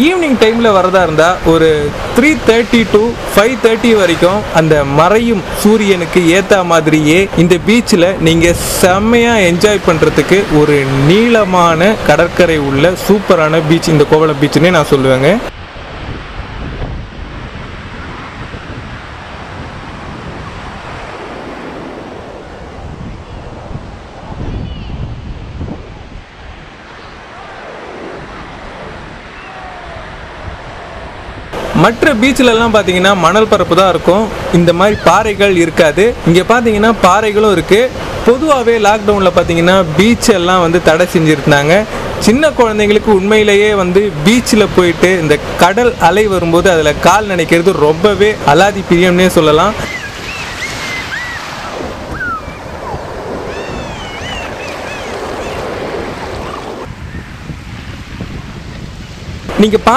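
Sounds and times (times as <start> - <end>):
sea surf washing over rocks: 0.0 - 23.0, 26.4 - 59.9
waves breaking on shore: 0.0 - 59.9
wind buffeting microphone: 15.3 - 33.0, 39.0 - 59.9.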